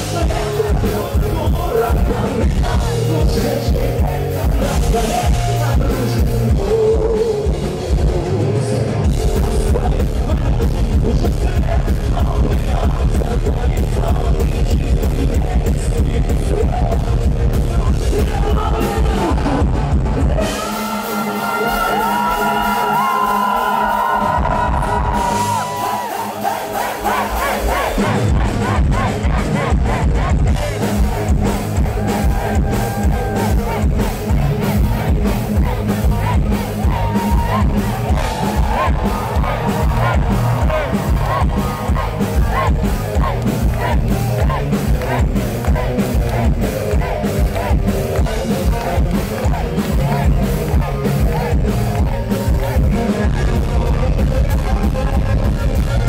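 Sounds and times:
live heavy metal band: 0:00.0 - 0:56.0.

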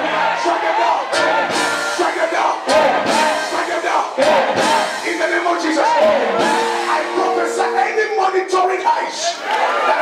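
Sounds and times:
congregation praying aloud: 0:00.0 - 0:10.0
held keyboard chords: 0:01.1 - 0:09.0.

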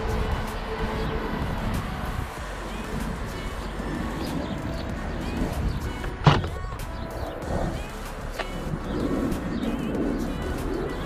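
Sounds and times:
birds cooing: 0:00.0 - 0:11.0
low rumble: 0:00.0 - 0:11.0.

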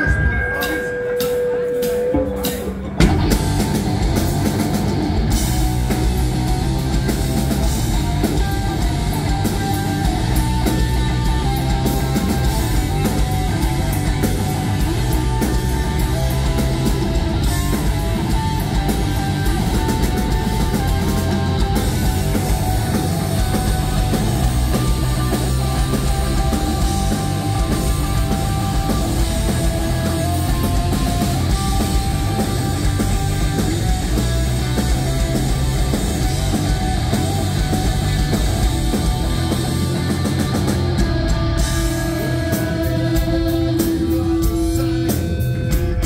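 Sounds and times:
rock band playing live: 0:00.0 - 0:46.0.

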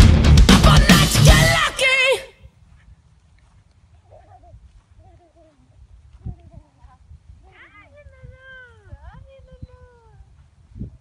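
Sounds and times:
faint high voice calling out: 0:01.4 - 0:02.4
wind rumble on microphone: 0:05.8 - 0:11.0.

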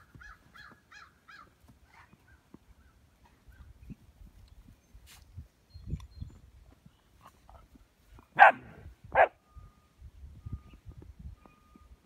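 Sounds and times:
dog barking: 0:08.4 - 0:09.4.

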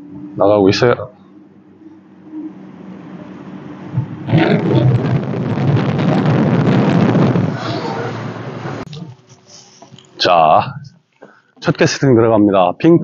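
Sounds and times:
boat engine hum: 0:00.0 - 0:10.2.

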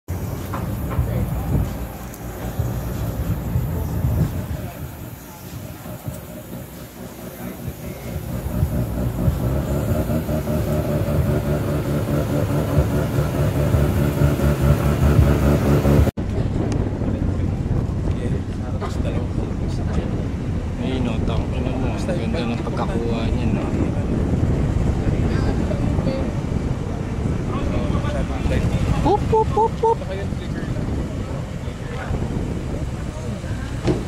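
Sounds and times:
car engine idling: 0:00.1 - 0:16.1.

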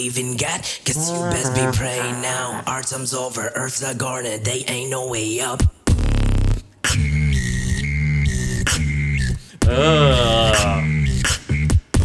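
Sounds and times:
beatboxing vocal bass: 0:00.8 - 0:03.2, 0:06.9 - 0:12.0
wavering pitched vocal sound: 0:00.9 - 0:03.0, 0:09.6 - 0:11.1
whistle-like vocal tone: 0:07.0 - 0:11.3
beatboxing sharp clicks: 0:08.6 - 0:08.9, 0:10.4 - 0:12.0.

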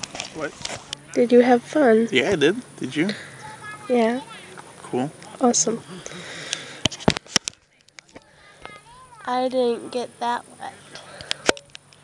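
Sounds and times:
camera microphone handling hiss: 0:00.0 - 0:01.0, 0:06.4 - 0:08.9.

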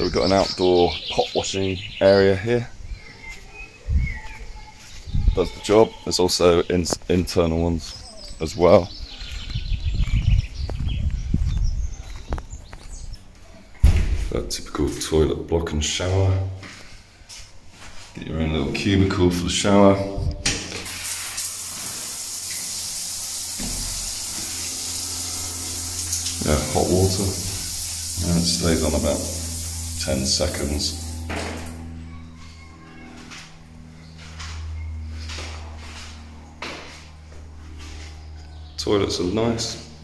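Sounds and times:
faint birds chirping: 0:00.0 - 0:20.4, 0:22.5 - 0:40.0
shower spray on tiled floor: 0:20.6 - 0:31.7.

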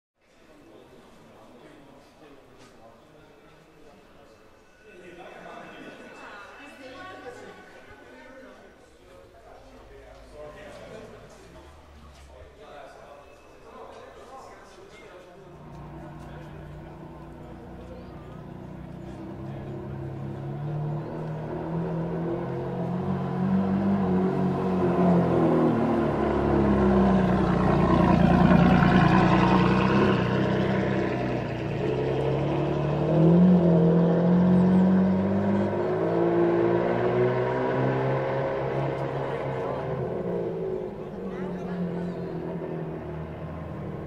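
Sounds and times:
car engine passing by: 0:15.4 - 0:44.0
engine revving: 0:15.6 - 0:44.0.

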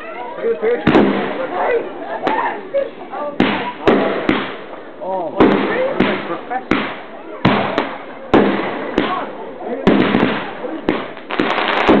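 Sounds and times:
fireworks crackling: 0:00.1 - 0:12.0
fireworks bangs: 0:00.7 - 0:02.6, 0:03.2 - 0:12.0.

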